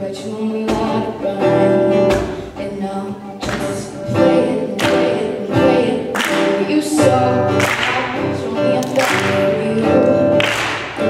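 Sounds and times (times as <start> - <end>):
woman singing long notes: 0.0 - 10.4
acoustic guitar strumming: 0.0 - 11.0.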